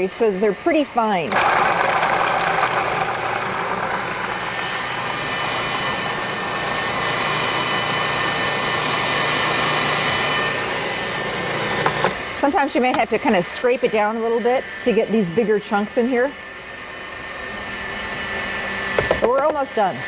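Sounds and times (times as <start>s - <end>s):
food processor grinding: 0.1s - 15.3s, 17.2s - 20.0s.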